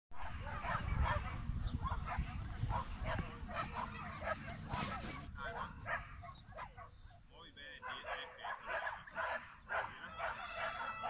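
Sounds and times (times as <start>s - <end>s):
dog barking: 0.2s - 11.0s.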